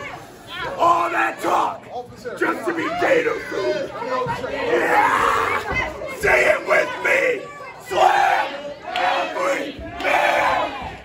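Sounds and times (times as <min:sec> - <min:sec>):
spectators shouting and yelling: 0:00.0 - 0:11.0.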